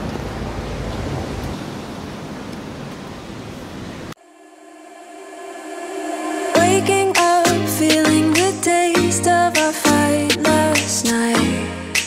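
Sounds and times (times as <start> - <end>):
background music: 4.2 - 12.0.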